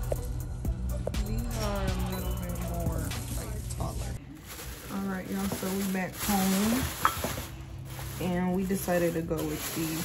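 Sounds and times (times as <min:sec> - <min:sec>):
woman speaking: 0:01.2 - 0:04.2, 0:04.8 - 0:07.0, 0:08.1 - 0:10.0
plastic bag rustling: 0:03.3 - 0:10.0.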